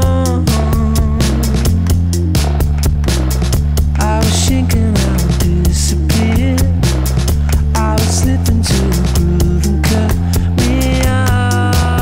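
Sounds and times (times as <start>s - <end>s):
song with drum beat and bass: 0.0s - 12.0s.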